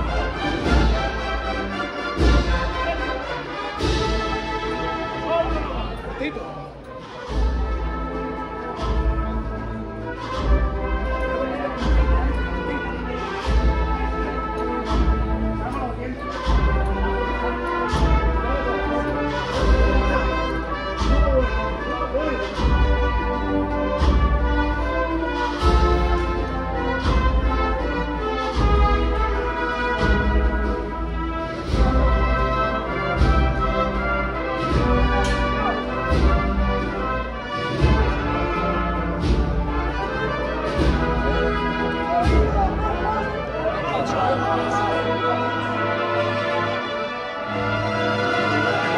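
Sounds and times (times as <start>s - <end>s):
drum beats: 0.0s - 45.0s
brass chords: 0.0s - 48.9s.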